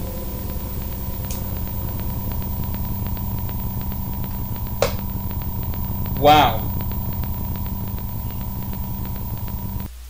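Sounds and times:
faint regular ticking: 0.0 - 9.9
low hum: 0.0 - 9.9.

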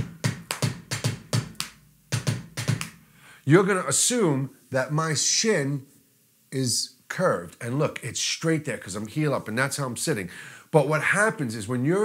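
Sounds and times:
kick drum strokes: 0.0 - 2.9.

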